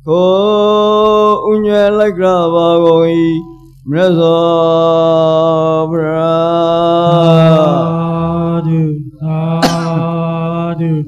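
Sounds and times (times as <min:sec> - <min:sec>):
person chanting: 0:00.0 - 0:11.0.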